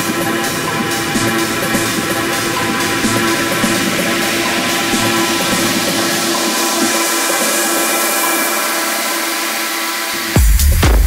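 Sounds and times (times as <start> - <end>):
held synth tones: 0.0 - 10.4.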